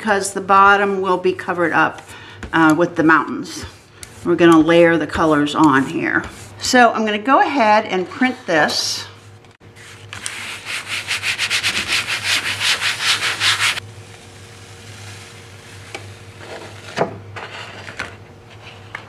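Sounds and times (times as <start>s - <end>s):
paper rubbing on printing plate: 8.1s - 13.8s.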